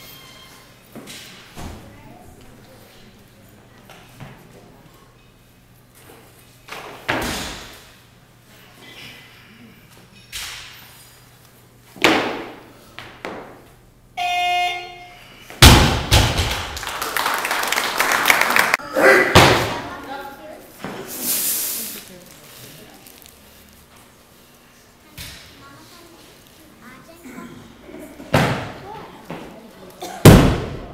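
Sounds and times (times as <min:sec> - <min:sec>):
buzzer: 0:14.2 - 0:15.3
barbell dropped with loud thud: 0:15.6 - 0:16.7, 0:30.2 - 0:30.9
cheering and clapping: 0:16.5 - 0:18.8.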